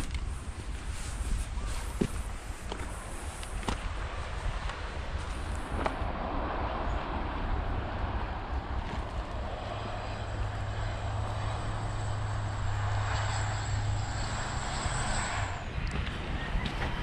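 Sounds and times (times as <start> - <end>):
high whine: 0.0 - 17.0
low engine drone: 0.0 - 17.0.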